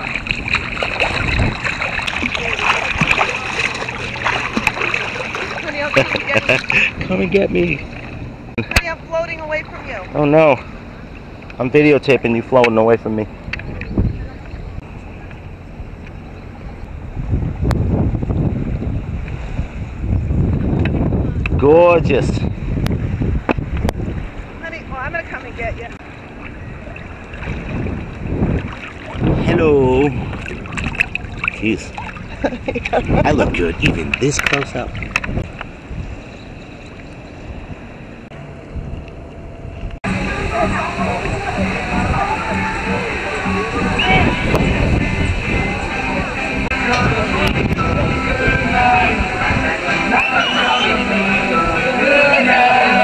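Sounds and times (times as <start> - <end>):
water lapping: 0.0 - 17.3, 23.0 - 53.0
wind buffeting microphone: 0.0 - 50.0
crowd voices: 12.0 - 16.6, 40.0 - 53.0.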